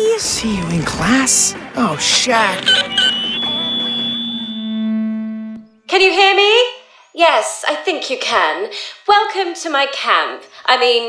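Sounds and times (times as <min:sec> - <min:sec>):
low buzzing hum: 0:00.4 - 0:05.8
megaphone feedback whine: 0:01.5 - 0:05.8.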